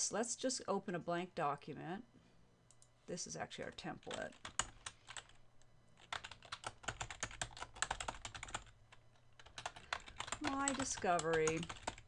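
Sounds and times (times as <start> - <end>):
typing on computer keyboard: 4.1 - 5.4, 6.0 - 8.8, 9.4 - 12.0.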